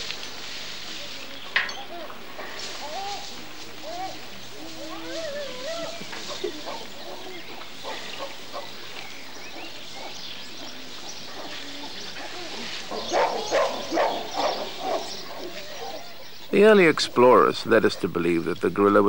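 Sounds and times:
animal calls: 0:01.7 - 0:18.8.

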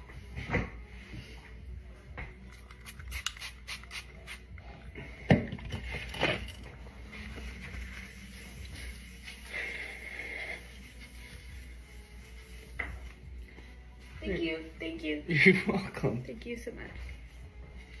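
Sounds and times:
faint background music: 0:00.0 - 0:18.0.

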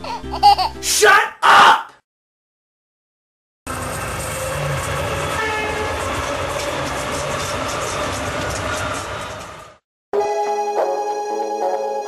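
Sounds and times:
train wheels rumbling and clattering: 0:03.7 - 0:09.8
train horn: 0:04.3 - 0:06.5.

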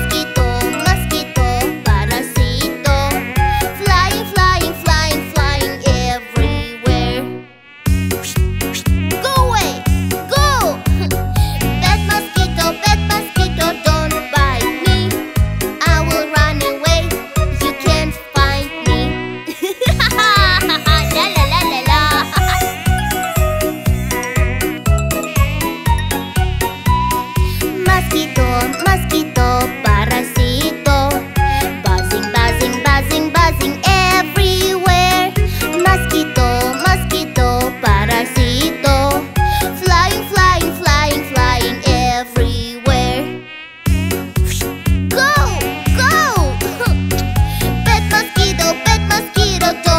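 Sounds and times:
children's song music: 0:00.0 - 0:49.9
mosquito buzzing whine: 0:00.1 - 0:19.6, 0:20.2 - 0:49.9
backing beat: 0:19.9 - 0:27.1.

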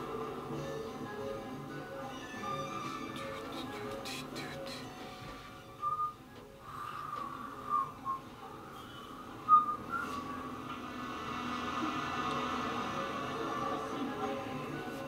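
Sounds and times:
quiet background music: 0:00.0 - 0:15.0.

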